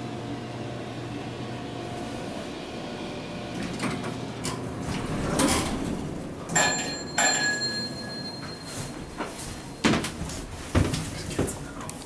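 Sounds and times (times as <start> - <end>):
elevator doors sliding open: 2.0 - 11.3
elevator arrival chime: 5.0 - 10.2.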